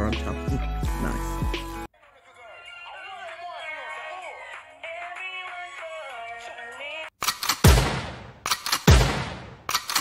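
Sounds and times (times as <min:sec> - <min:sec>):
sharp clicks: 0:07.2 - 0:07.6, 0:08.4 - 0:09.0, 0:09.7 - 0:10.0.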